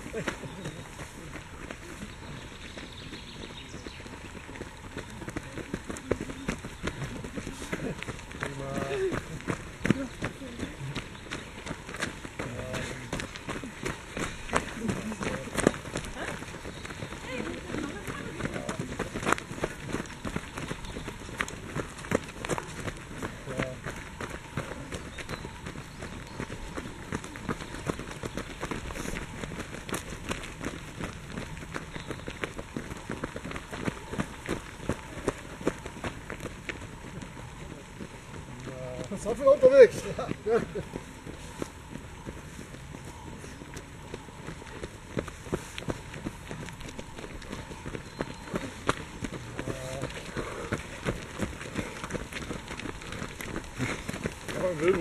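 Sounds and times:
runners' voices: 0:00.0 - 0:55.0
running footsteps on dry leaves: 0:00.0 - 0:55.0.

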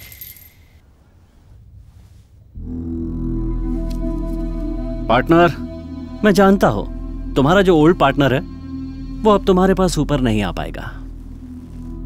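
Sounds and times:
quiet low rumble: 0:00.8 - 0:12.0.

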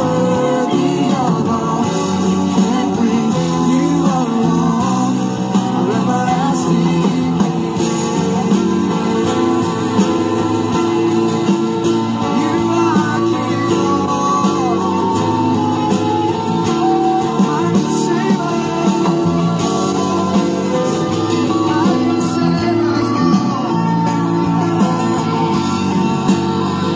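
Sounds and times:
guitar accompaniment: 0:00.0 - 0:26.9.

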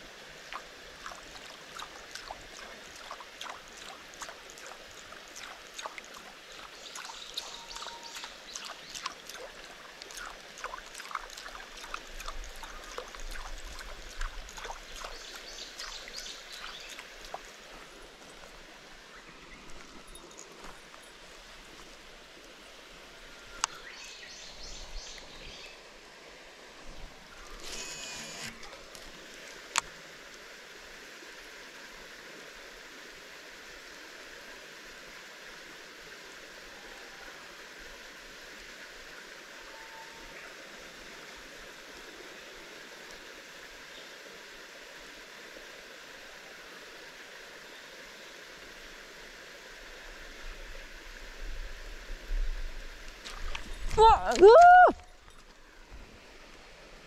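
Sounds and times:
flowing water hiss: 0:00.0 - 0:57.0.

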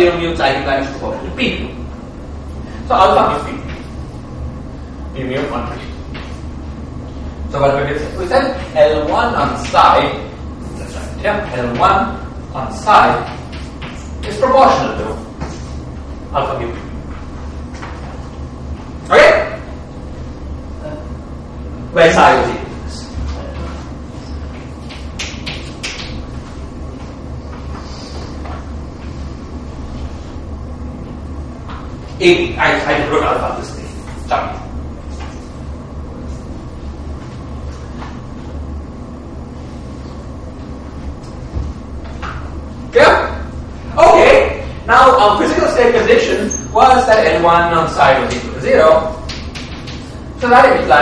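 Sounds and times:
low room hum: 0:00.0 - 0:51.0.

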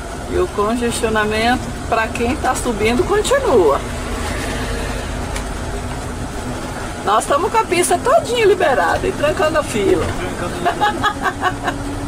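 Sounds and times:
engine and road noise inside cab: 0:00.0 - 0:12.0.

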